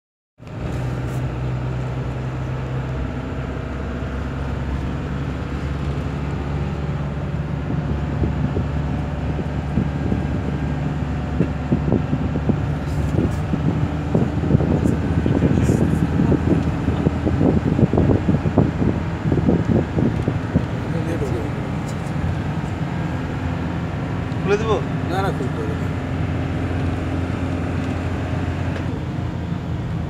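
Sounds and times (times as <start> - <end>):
vehicle engine hum and road noise: 0.4 - 30.0.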